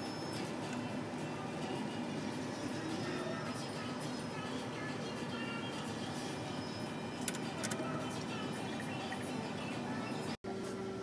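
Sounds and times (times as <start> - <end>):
electronic game machine music: 5.4 - 10.4.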